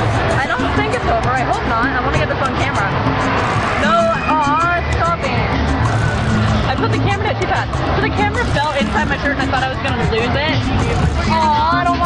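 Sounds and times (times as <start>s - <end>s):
background music: 0.0s - 12.0s
steady low rumble: 0.0s - 12.0s
high wavering voice: 3.8s - 5.6s.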